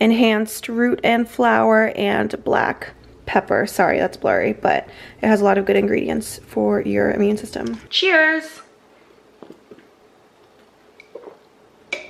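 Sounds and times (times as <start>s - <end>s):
faint gulps: 11.0s - 12.0s.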